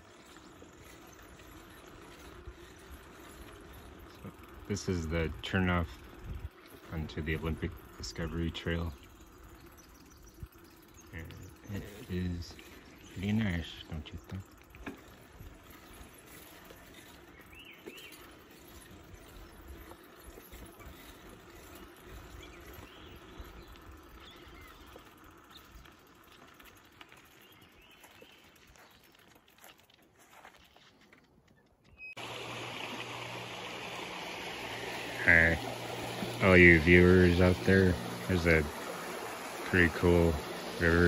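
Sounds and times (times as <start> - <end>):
bicycle rolling on trail: 0.0 - 41.0
bird chirps: 16.6 - 25.8
creek rushing: 32.2 - 41.0.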